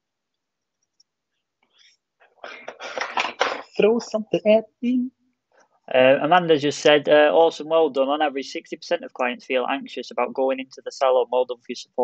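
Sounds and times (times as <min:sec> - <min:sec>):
faint breathy voice: 0:02.4 - 0:03.8.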